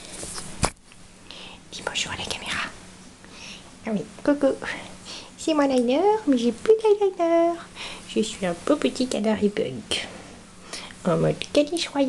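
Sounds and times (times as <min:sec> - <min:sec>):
person whispering: 0:01.7 - 0:02.8.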